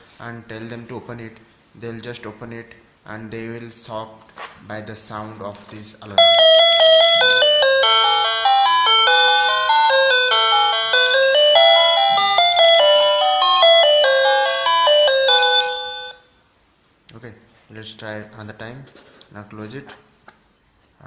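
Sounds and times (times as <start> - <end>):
electronic doorbell tune: 6.2 - 16.2.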